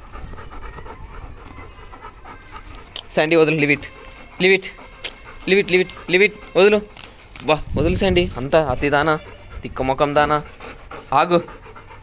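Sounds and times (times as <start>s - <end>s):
dog panting: 0.0s - 12.0s.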